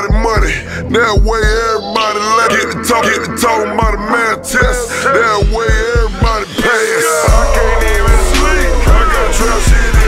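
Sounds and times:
rapping over a beat: 0.0s - 10.0s
deep bass hits: 7.3s - 10.0s.

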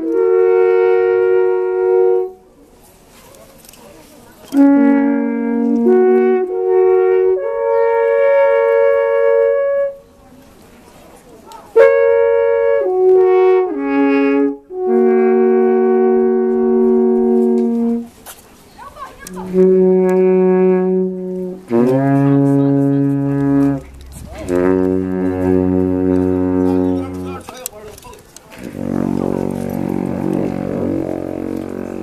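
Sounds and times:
alphorns playing long low note: 0.0s - 2.5s, 4.5s - 10.0s, 11.8s - 18.2s, 19.2s - 27.5s, 28.6s - 32.0s
alphorns playing a held chord: 19.2s - 27.5s, 28.6s - 32.0s.

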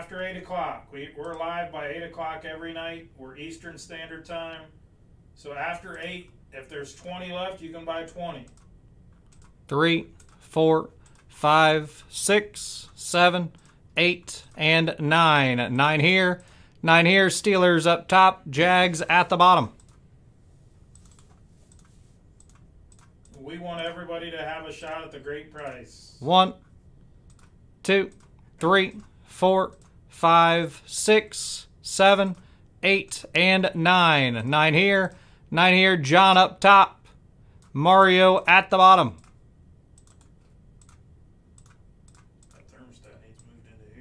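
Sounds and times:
keyboard and mouse clicks: 8.0s - 11.3s, 19.8s - 20.0s, 20.9s - 23.4s, 26.6s - 30.0s, 39.1s - 39.4s, 40.0s - 42.8s.

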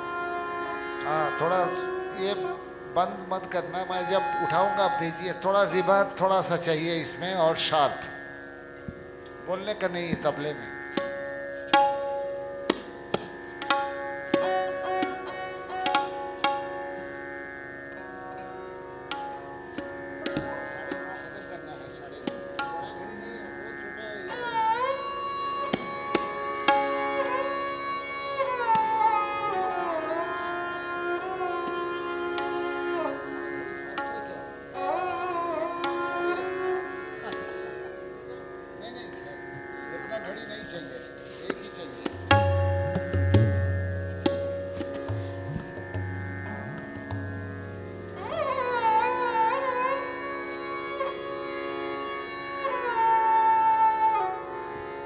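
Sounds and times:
bowed string melody: 0.0s - 55.0s
tabla strokes: 10.1s - 17.4s, 24.3s - 29.6s, 41.2s - 49.9s.

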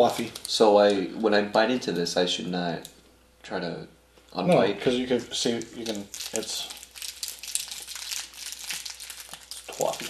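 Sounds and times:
plastic candy wrapper crinkling: 0.0s - 1.0s, 5.4s - 10.0s.

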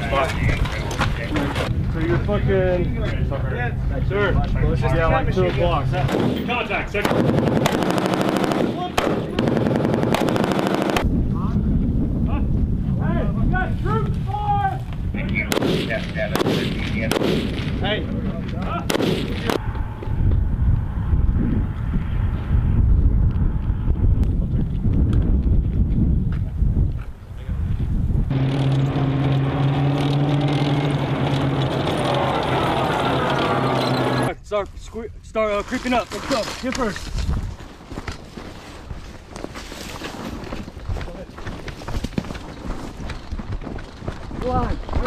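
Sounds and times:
rifle and machine gun fire: 7.0s - 11.0s, 15.5s - 17.8s, 18.9s - 19.6s
low rumble: 16.0s - 34.3s
engine drone: 19.4s - 24.0s, 28.3s - 34.4s
people shouting: 31.9s - 34.2s.

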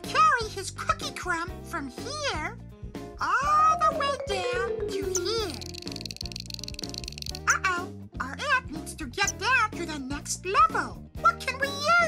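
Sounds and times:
playful game music: 3.4s - 7.5s.

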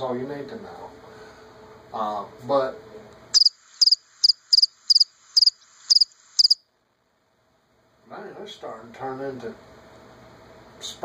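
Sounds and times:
cricket chirping: 3.4s - 6.6s.

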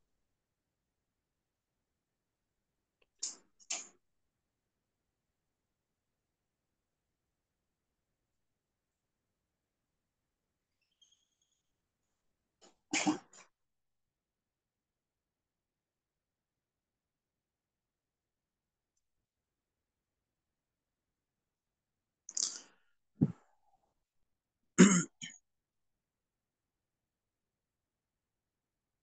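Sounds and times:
man clearing his throat: 24.8s - 25.3s.

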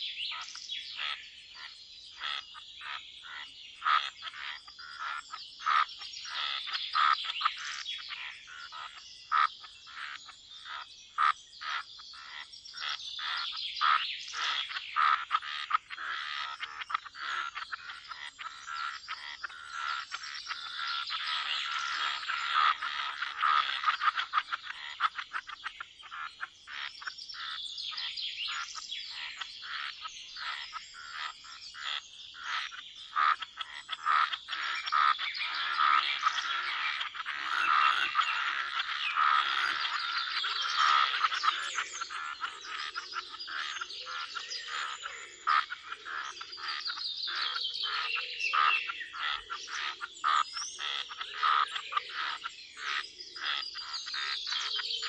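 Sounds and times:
birds chirping: 0.0s - 55.0s
frogs croaking: 0.0s - 55.0s.

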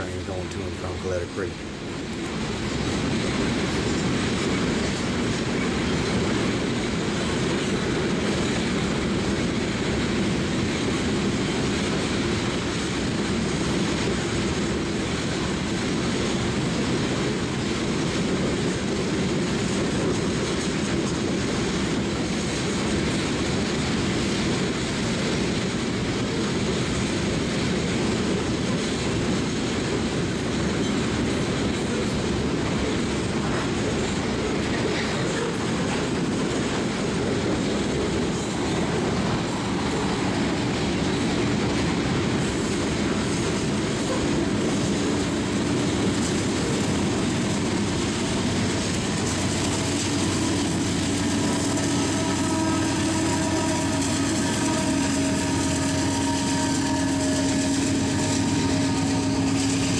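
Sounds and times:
train wheels on rails: 0.0s - 59.9s.

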